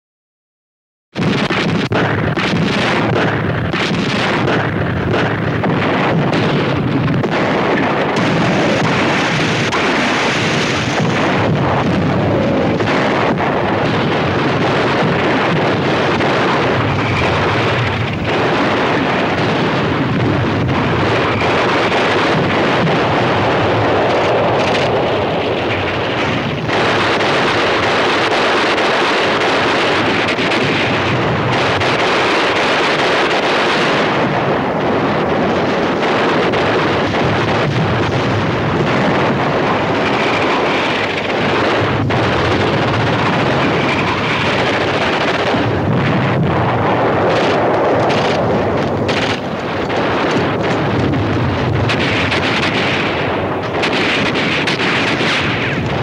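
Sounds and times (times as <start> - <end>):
explosions and gunfire rumble: 1.1 - 56.0
sharp gunshot cracks: 1.2 - 56.0.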